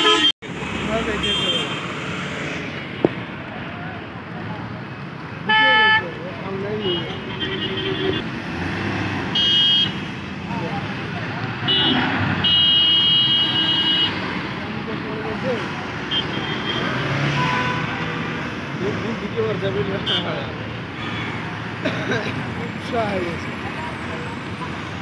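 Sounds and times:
vehicle horns honking: 0.0 - 0.4, 1.1 - 1.9, 5.4 - 8.2, 9.3 - 10.2, 11.6 - 14.3, 16.0 - 18.3, 19.8 - 21.5
passing road traffic: 0.0 - 25.0.

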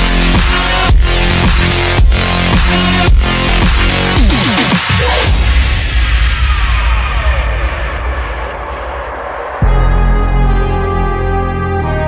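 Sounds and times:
deep bass: 0.0 - 12.0
noisy whoosh with falling tone: 4.9 - 10.6.

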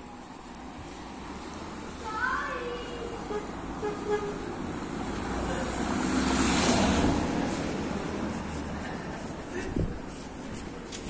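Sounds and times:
vehicle passing on brick street: 0.0 - 11.0.

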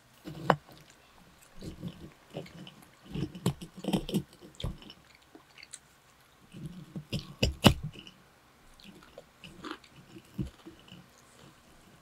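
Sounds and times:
chewing and wet mouth sounds: 0.5 - 12.0.

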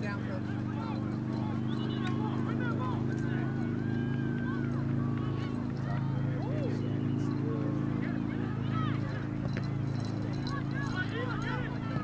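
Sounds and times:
distant shouting voices: 0.0 - 12.0
low motor hum with flutter: 0.0 - 12.0.

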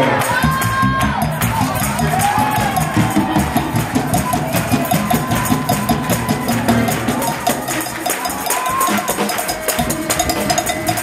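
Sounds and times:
drums and tambourine: 0.0 - 11.0
fast gospel music: 0.0 - 11.0.

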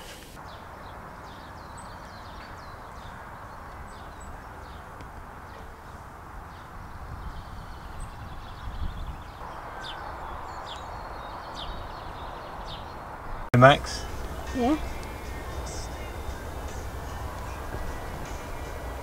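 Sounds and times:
steady background hiss: 0.0 - 1.2, 13.6 - 19.0
small birds chirping: 0.0 - 19.0
low rumbles: 13.6 - 19.0.

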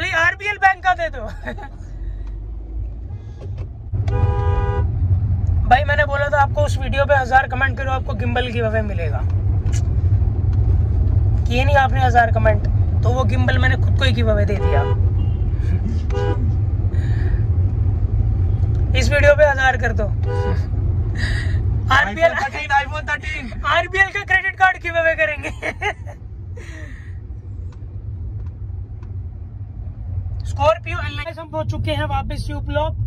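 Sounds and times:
car engine and road rumble: 0.0 - 33.0
car horn beep: 4.0 - 5.0, 14.5 - 16.6, 20.2 - 20.8.

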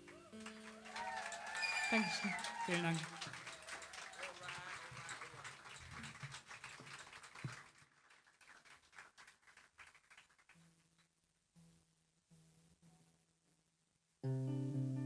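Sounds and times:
audience clapping: 0.0 - 10.6
audience calling out: 0.1 - 5.4
quiet guitar notes: 14.2 - 15.0.

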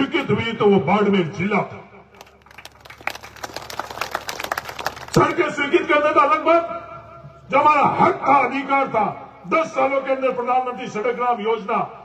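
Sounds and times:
audience clapping: 2.2 - 5.4.

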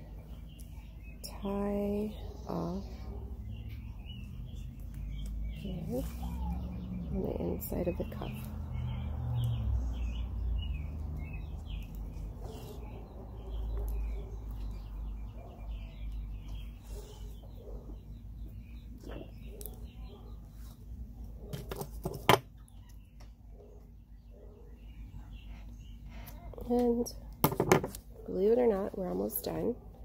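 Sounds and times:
small birds chirping: 0.0 - 30.0.

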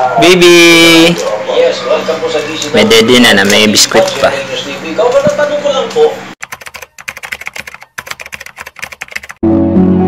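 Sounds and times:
keyboard typing clicks: 6.4 - 9.4.

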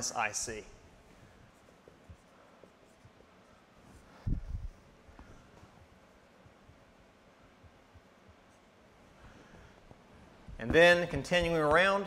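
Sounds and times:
marker writing on whiteboard: 1.0 - 11.5.

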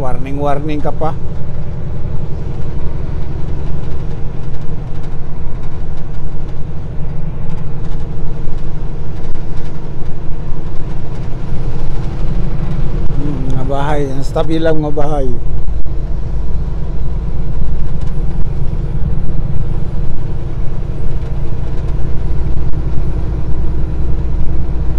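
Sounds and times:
road rumble: 0.0 - 24.9
truck diesel engine droning: 0.0 - 24.9.

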